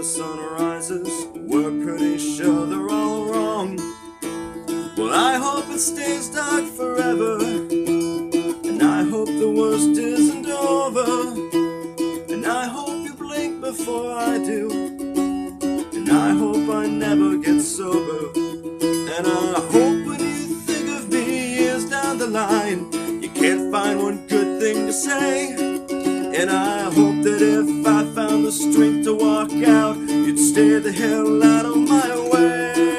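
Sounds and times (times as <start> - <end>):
slide acoustic guitar: 0.0 - 32.9.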